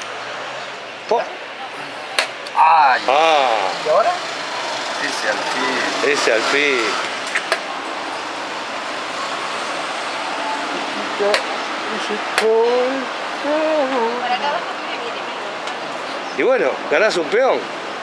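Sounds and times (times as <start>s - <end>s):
steady rushing background noise: 0.0s - 18.0s.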